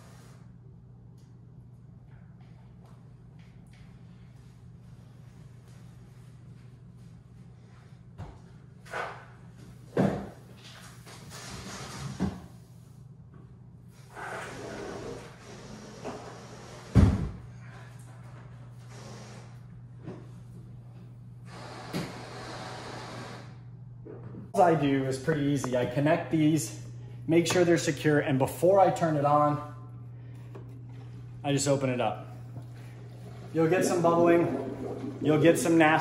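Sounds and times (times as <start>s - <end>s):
low steady hum: 15.0s - 36.0s.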